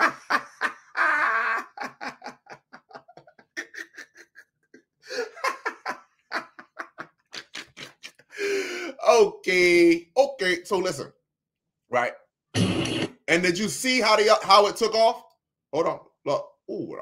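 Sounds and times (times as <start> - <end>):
man laughing hard: 0.0 - 9.0.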